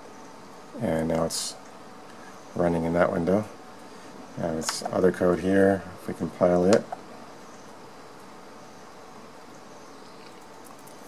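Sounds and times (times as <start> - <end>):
background hiss: 0.0 - 11.0
faint constant hum: 0.0 - 11.0.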